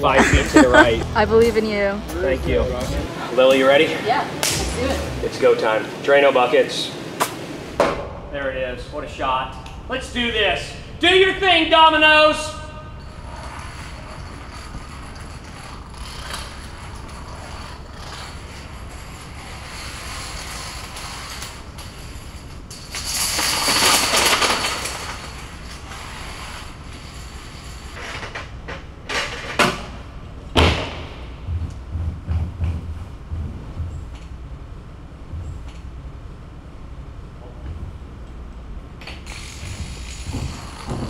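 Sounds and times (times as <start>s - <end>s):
plastic dominoes clattering: 22.8s - 25.3s
low thumps: 30.5s - 34.5s.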